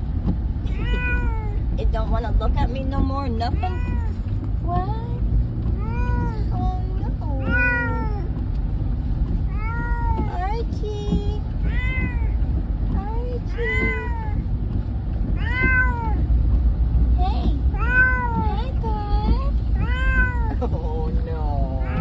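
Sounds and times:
cat meowing: 0.7s - 1.6s, 7.4s - 8.3s, 11.6s - 12.4s, 13.5s - 14.4s, 15.4s - 16.3s, 17.7s - 18.4s, 19.8s - 20.6s, 21.8s - 22.0s.

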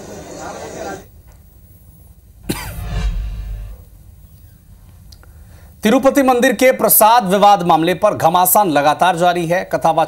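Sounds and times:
deep low boom: 2.4s - 4.5s.

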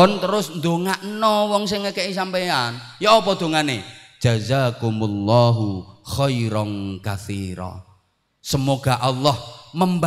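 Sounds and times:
man chanting into a microphone: 0.0s - 7.9s, 8.5s - 10.0s.

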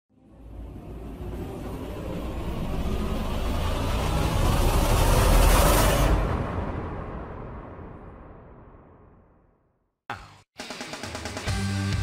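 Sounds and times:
car driving through tunnel: 0.1s - 8.9s.

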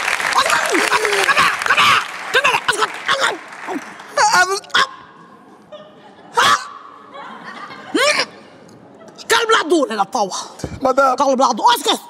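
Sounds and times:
applause: 0.0s - 4.2s
laughter: 7.1s - 8.4s.

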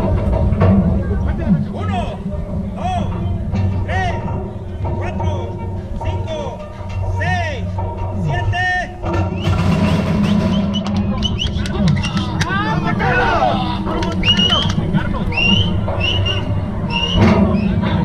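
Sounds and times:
background music: 0.0s - 18.0s
men shouting and whooping: 11.0s - 17.2s.

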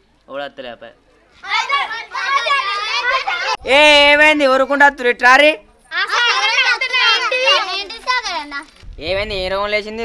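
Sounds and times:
girls chattering: 1.3s - 3.6s, 5.9s - 8.8s.

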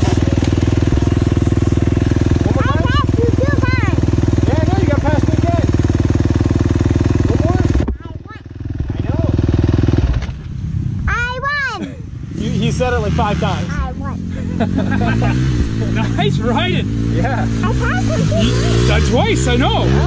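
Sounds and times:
dirt bike engine running: 0.0s - 20.0s
voices: 2.0s - 5.8s, 11.0s - 20.0s.

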